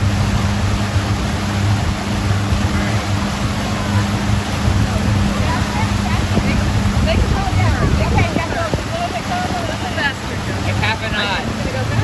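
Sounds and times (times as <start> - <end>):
churning water and wake: 0.0 - 12.0
motorboat engine droning: 0.0 - 12.0.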